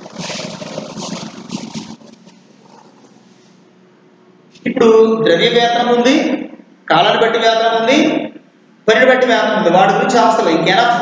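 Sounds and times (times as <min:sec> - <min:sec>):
duster scrubbing a chalkboard: 0:00.0 - 0:03.5.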